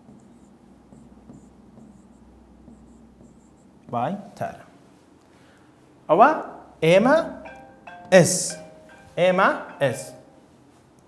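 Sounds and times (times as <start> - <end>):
stylus scratching and tapping on glass: 0.0 - 4.0.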